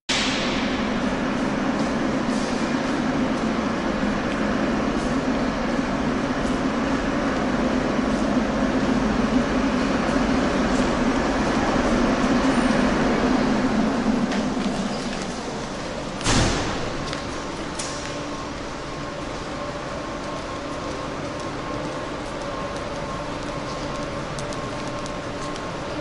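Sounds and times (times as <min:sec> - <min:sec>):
metro station rumble and hum: 0:00.1 - 0:26.0.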